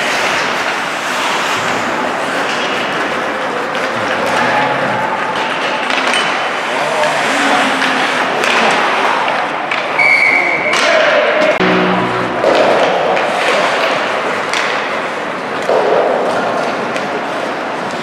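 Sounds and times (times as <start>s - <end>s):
skates scraping ice: 0.0s - 10.6s, 12.4s - 18.0s
brief high tone: 11.6s - 13.2s.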